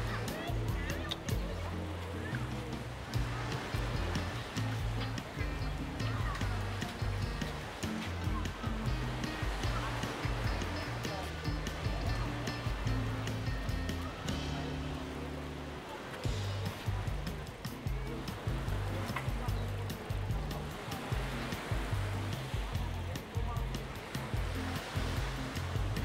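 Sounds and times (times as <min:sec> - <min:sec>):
background music with bass: 0:00.0 - 0:26.0.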